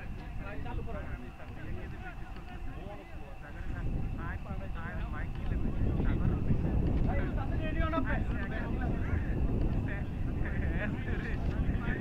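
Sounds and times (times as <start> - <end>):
distant people calling and talking: 0.0 - 12.0
steady low rumble: 0.0 - 12.0.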